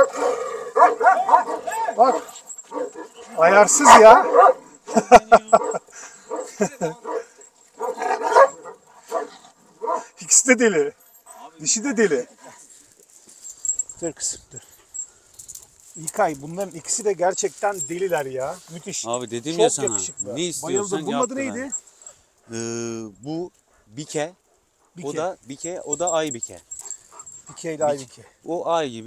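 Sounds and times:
dogs barking: 0:00.0 - 0:10.2
metal chain leashes clinking: 0:00.0 - 0:22.5, 0:23.5 - 0:28.4.

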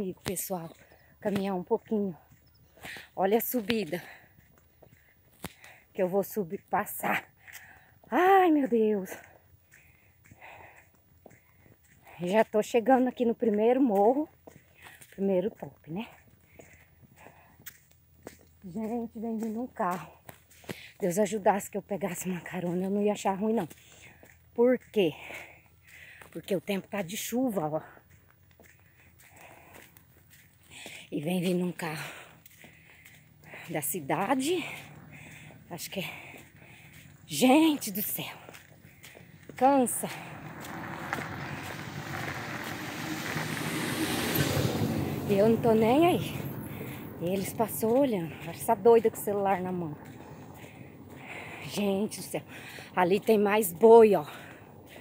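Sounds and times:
faint footsteps on road: 0:00.0 - 0:55.0
car engine and tyre noise: 0:32.0 - 0:55.0.

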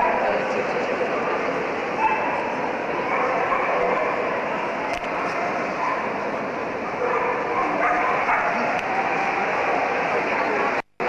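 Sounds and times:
crowd chatter: 0:00.0 - 0:11.0
dogs yipping and barking: 0:02.0 - 0:04.3, 0:05.3 - 0:06.2, 0:06.9 - 0:08.8.

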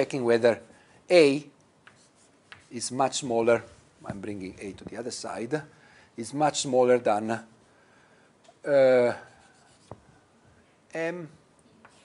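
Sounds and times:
sharp tap of writing tool: 0:01.8 - 0:02.7
writing on a board: 0:01.8 - 0:02.9, 0:09.2 - 0:10.1.

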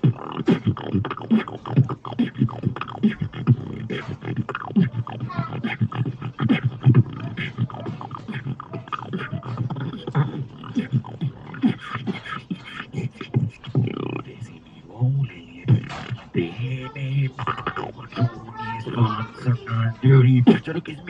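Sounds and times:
human beatboxing: 0:00.0 - 0:21.0.

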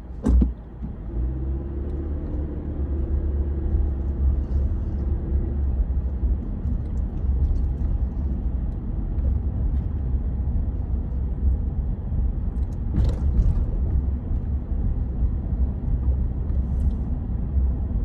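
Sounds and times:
car driving rumble inside cabin: 0:00.0 - 0:18.0.

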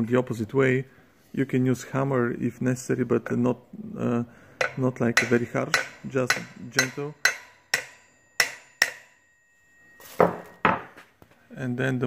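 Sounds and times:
hammer tapping metal axle: 0:04.6 - 0:09.4.

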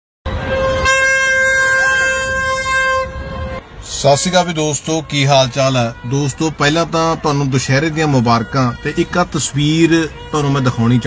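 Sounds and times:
horn long steady note: 0:00.3 - 0:06.3.

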